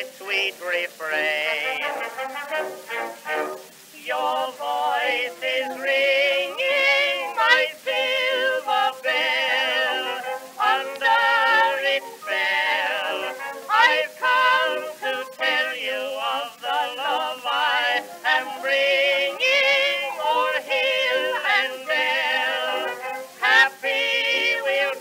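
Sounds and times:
man and woman singing duet: 0:00.0 - 0:02.2, 0:02.9 - 0:25.0
small orchestra: 0:00.0 - 0:25.0.

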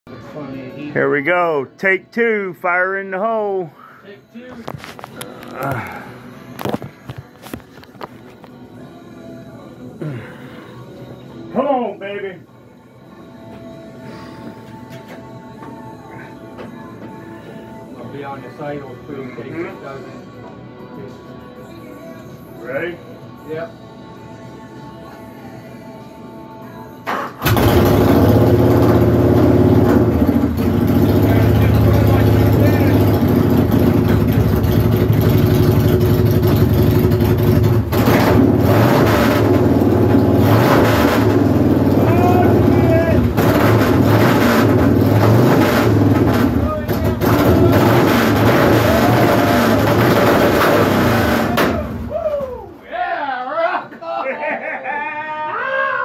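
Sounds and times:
motorcycle engine starting and revving: 0:27.1 - 0:51.8.

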